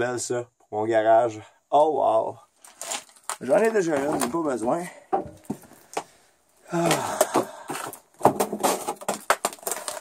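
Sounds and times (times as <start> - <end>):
scuffs and knocks among wooden boards: 2.7 - 6.1, 6.8 - 10.0
person exclaiming: 6.7 - 7.4.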